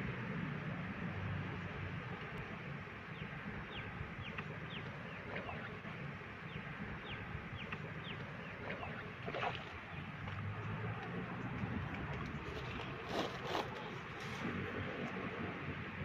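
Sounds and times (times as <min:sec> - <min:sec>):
outdoor background noise: 0:00.0 - 0:16.0
birds chirping: 0:01.5 - 0:14.2.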